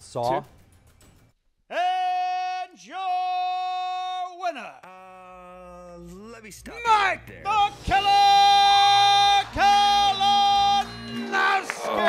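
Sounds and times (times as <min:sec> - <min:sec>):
man's long held announcer call: 0:01.7 - 0:04.6, 0:07.4 - 0:12.0.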